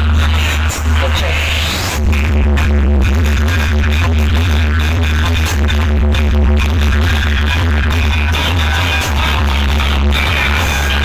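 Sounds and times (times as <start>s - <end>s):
music with heavy bass: 0.0s - 11.0s.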